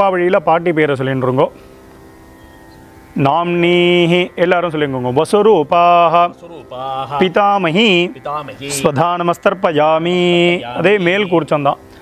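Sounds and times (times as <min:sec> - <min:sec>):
man chanting: 0:03.2 - 0:12.0.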